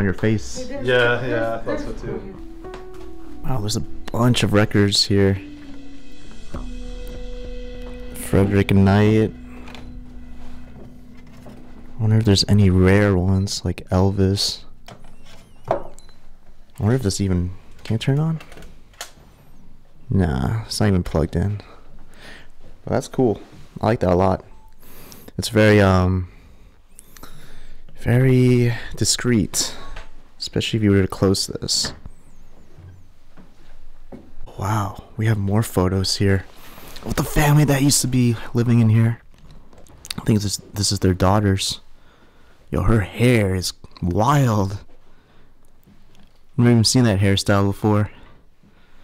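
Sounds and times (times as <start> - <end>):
low hum: 0.0 - 17.8
high-pitched wavering squeaks: 2.3 - 16.4.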